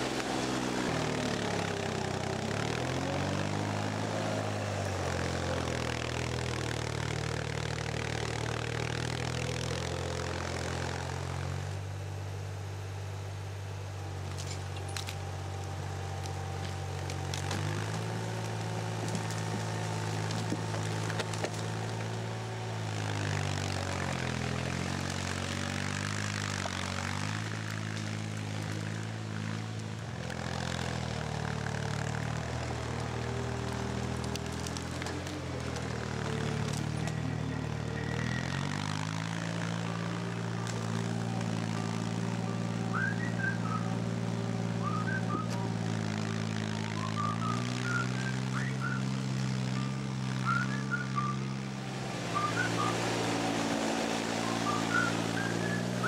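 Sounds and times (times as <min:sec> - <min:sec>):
diesel engine running under load: 0:00.0 - 0:56.0
birds chirping: 0:46.8 - 0:56.0.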